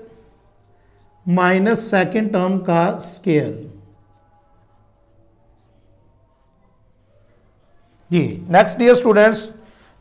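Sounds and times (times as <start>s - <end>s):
marker squeaking on whiteboard: 3.1s - 7.8s.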